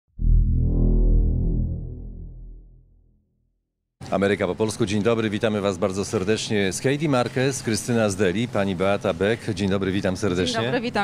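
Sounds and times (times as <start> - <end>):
deep electronic hit: 0.2 - 3.5.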